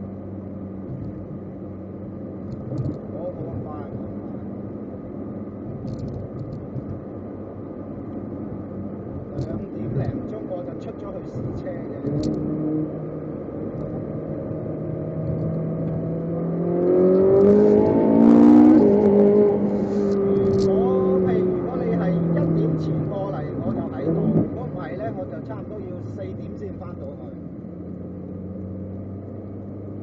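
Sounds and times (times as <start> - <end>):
car engine accelerating: 0.0 - 30.0.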